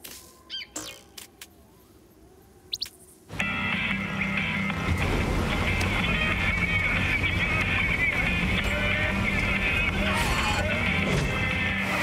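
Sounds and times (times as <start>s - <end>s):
old truck engine running: 3.5s - 12.0s.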